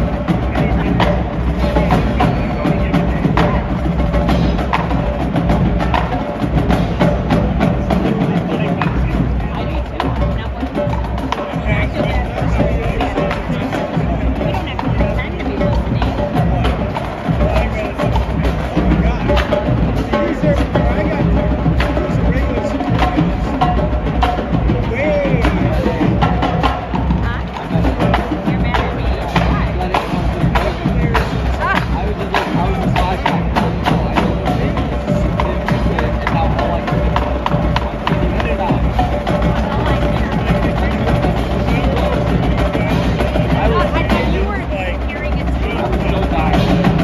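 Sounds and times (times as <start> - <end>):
drumline playing cadence: 0.0 - 47.0.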